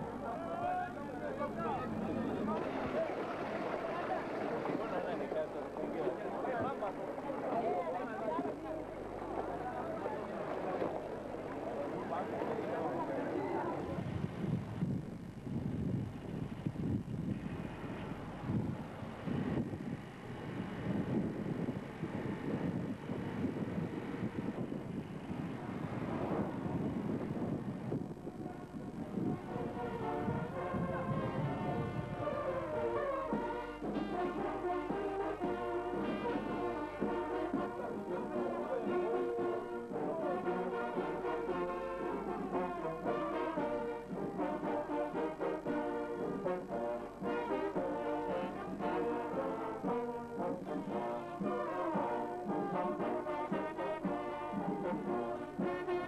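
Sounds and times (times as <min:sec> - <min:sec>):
wind on microphone: 0:13.8 - 0:33.0
brass band playing: 0:28.3 - 0:56.0.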